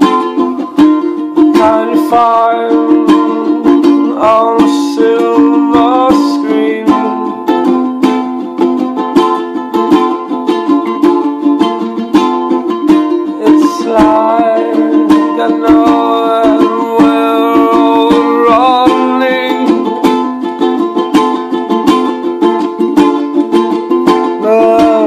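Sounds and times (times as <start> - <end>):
strummed string instrument: 0.0 - 25.0
man singing: 1.4 - 7.5, 13.1 - 20.4, 24.2 - 25.0.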